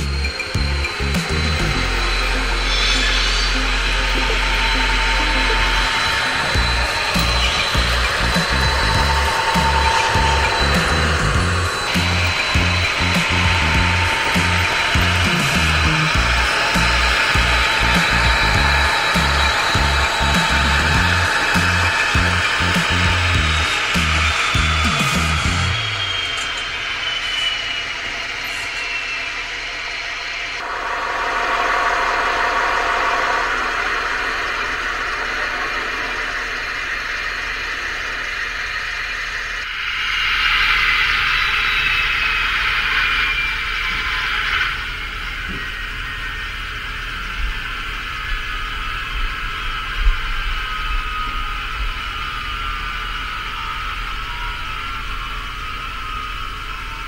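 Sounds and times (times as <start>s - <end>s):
music with a heavy beat: 0.0s - 26.0s
diesel engine sound through small speakers: 0.0s - 26.9s
model locomotives whirring: 0.0s - 57.0s.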